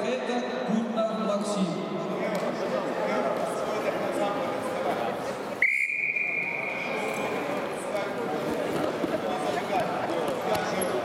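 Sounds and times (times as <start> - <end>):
referee's whistle blast: 5.6 - 6.9.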